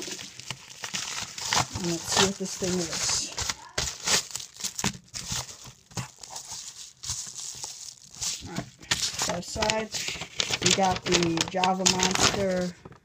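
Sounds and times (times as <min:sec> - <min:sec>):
paper envelope tearing and crinkling: 0:00.0 - 0:13.0.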